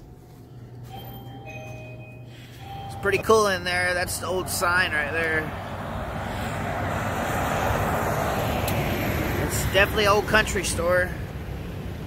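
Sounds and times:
refrigerated coolers humming: 0.0s - 6.1s.

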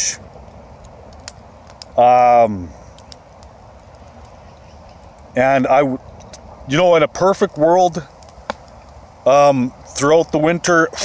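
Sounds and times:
sharp fire pops: 0.0s - 11.0s
wood fire crackling: 0.0s - 11.0s.

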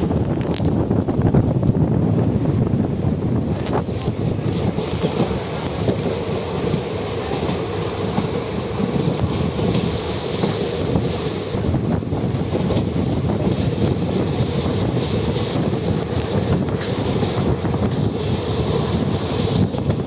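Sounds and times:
train wheels rolling on rails: 0.0s - 20.0s.

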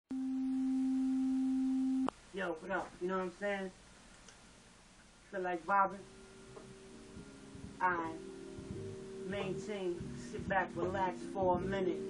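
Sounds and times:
low electronic tone: 0.1s - 2.1s, 5.9s - 12.0s.

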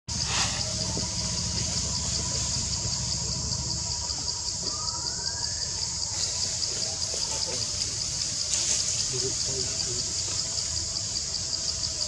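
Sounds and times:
low rumble: 0.1s - 6.4s
pulsing high-pitched insect drone: 0.1s - 12.0s
faint rising whistle: 0.2s - 6.6s.

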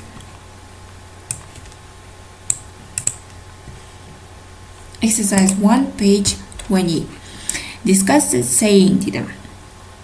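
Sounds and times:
low steady hum: 0.0s - 10.0s
computer control clicks: 2.5s - 3.2s, 5.3s - 5.6s.

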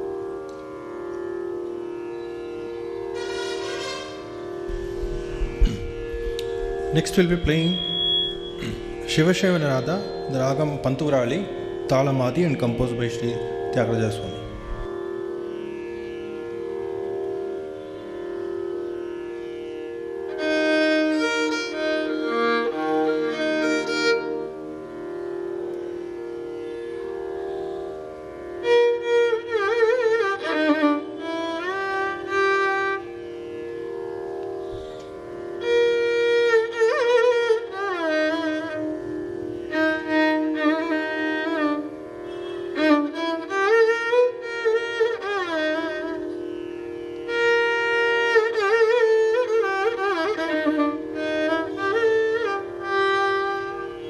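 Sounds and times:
violin playing ornamented phrases: 0.0s - 54.0s
steady drone: 2.6s - 15.4s.

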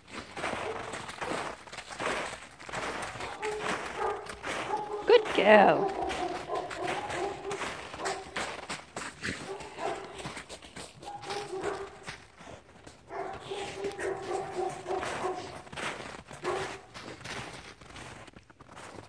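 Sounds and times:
paws scuffing in snow: 0.0s - 19.0s.

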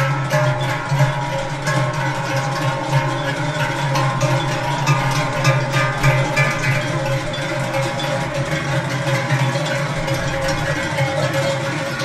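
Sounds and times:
cowbells clanging: 0.0s - 12.0s.

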